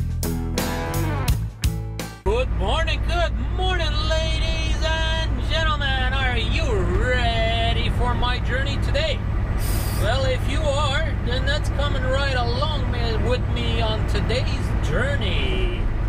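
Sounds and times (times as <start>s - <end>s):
truck engine and road drone: 0.0s - 16.0s
short air hiss: 9.6s - 10.1s.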